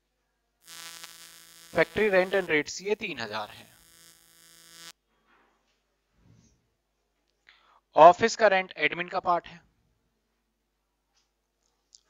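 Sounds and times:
electrical mains hum: 0.6s - 4.9s.

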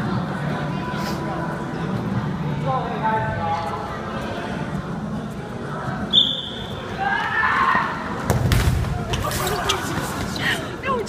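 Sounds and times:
high whistle blast: 6.1s - 6.7s
inflatable balls thudding together: 8.2s - 10.3s
voices: 8.9s - 11.0s.

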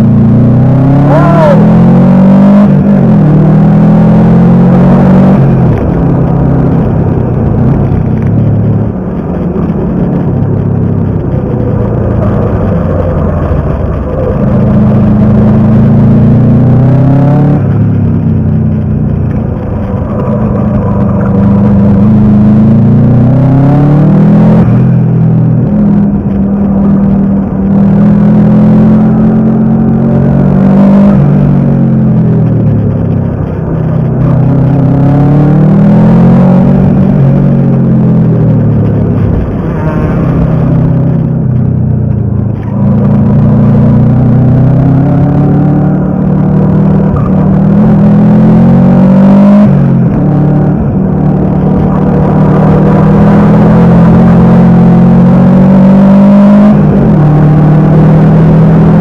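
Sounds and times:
car engine revving under acceleration: 0.0s - 59.0s.

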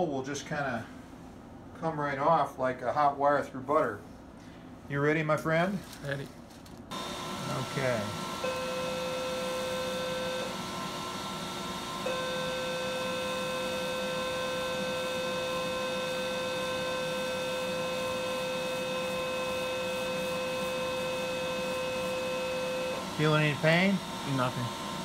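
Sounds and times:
electrosurgical unit activation tone: 6.9s - 25.0s.

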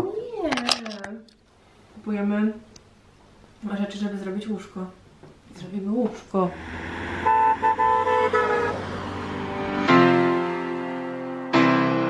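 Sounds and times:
van driving by: 6.5s - 11.5s
van horn honking: 6.6s - 11.0s.

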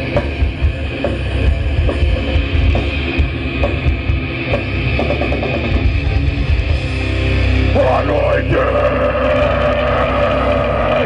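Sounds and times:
metal band playing: 0.0s - 11.0s.

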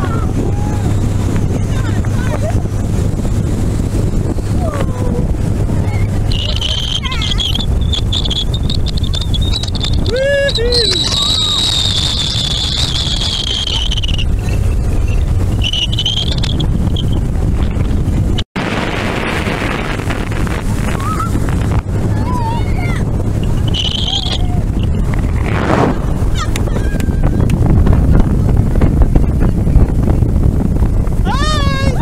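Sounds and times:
boat engine and hull noise: 0.0s - 32.0s
wind buffeting microphone: 0.0s - 32.0s
high-pitched whine: 6.2s - 17.1s.

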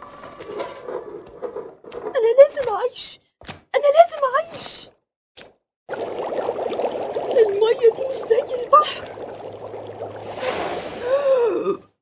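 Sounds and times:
water bubbling on the boil: 5.9s - 11.2s
breathy hiss: 10.2s - 11.4s
woman's pitched vocal sound: 10.8s - 11.9s.

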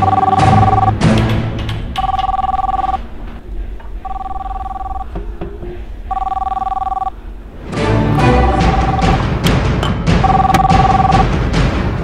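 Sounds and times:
mobile phone ringing: 0.0s - 1.0s, 2.0s - 3.0s, 4.0s - 5.1s, 6.1s - 7.1s, 8.2s - 9.3s, 10.2s - 11.2s.

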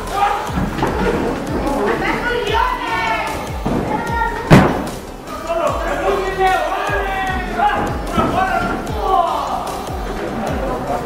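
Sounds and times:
voices shouting: 0.0s - 11.0s
dull thuds on wrestling mat: 4.5s - 5.0s.

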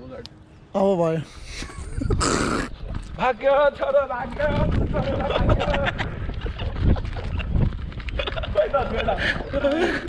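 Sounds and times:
wind rumbling on microphone: 1.4s - 10.0s.

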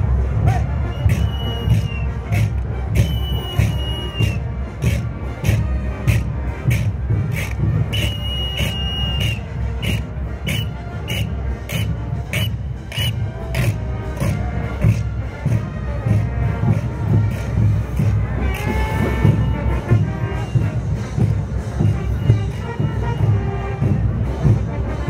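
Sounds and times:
carnival band music: 0.0s - 25.0s
drums and cymbals beat: 0.0s - 25.0s
whistle blasts: 0.8s - 2.2s, 3.0s - 4.4s, 7.4s - 13.2s.

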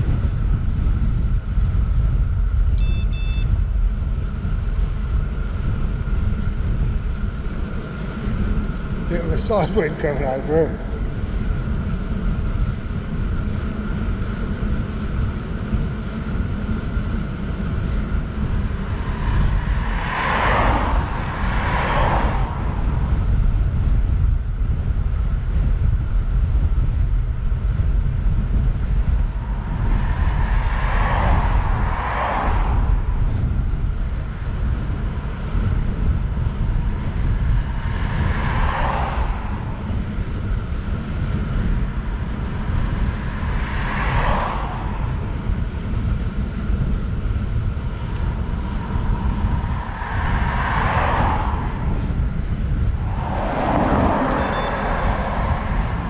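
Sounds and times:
vehicles passing: 0.0s - 56.0s
wind buffeting microphone: 0.0s - 56.0s.

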